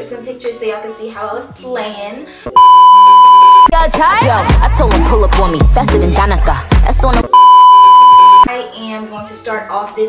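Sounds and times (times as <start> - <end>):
hip-hop music: 2.5 - 9.3
steady electronic beep: 2.6 - 3.8, 7.3 - 8.5.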